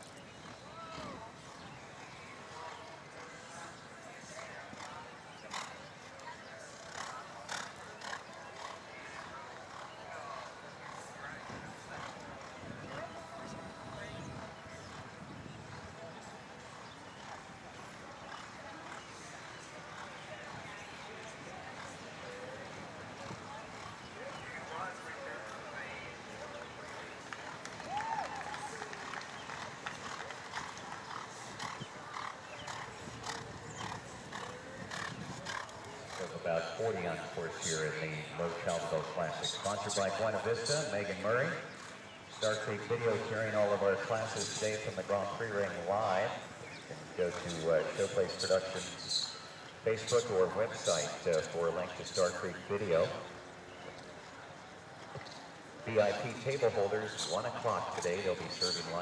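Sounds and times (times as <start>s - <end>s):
horse hooves on sand cantering: 10.4s - 37.0s.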